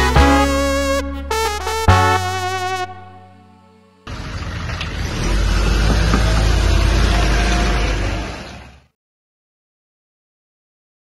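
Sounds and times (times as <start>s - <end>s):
sustained musical chord: 0.0s - 4.8s
vehicle engine revving: 4.1s - 8.9s.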